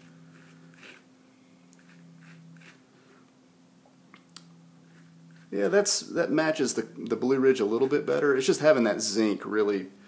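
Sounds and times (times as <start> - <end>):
steady low hum: 0.0 - 10.0
palette knife scraping paper: 0.3 - 1.0, 1.8 - 2.8.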